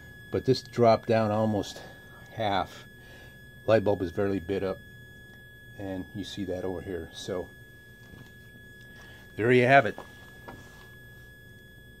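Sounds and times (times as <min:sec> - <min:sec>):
transformer coil whine: 0:00.0 - 0:12.0.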